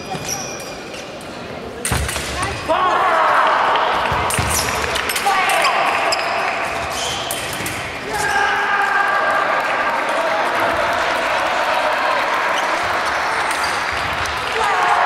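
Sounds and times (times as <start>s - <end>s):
voices in a large hall: 0.0s - 15.0s.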